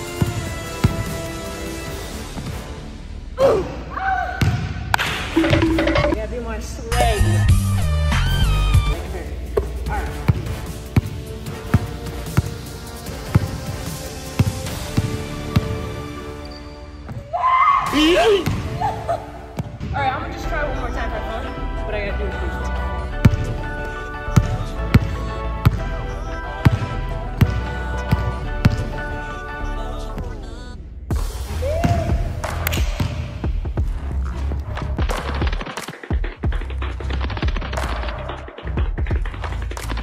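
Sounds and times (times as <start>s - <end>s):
background music: 0.0s - 40.0s.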